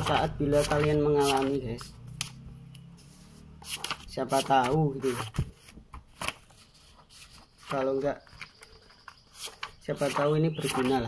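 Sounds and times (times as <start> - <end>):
paper sheets rustling and riffling: 0.0 - 2.0, 3.0 - 11.0.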